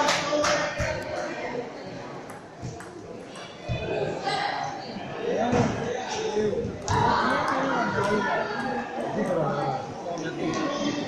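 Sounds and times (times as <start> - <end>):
voices in echoing hall: 0.0 - 11.0.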